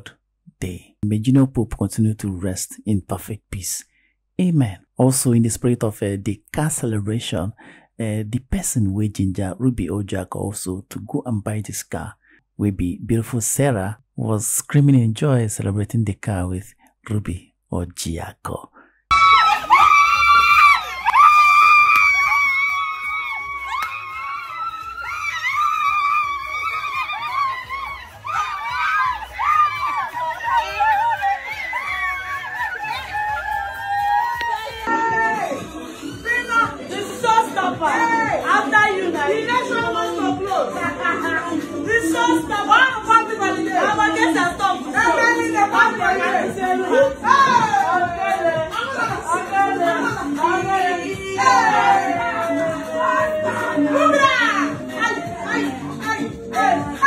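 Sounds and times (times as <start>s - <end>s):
people talking and calling out: 19.1s - 57.0s.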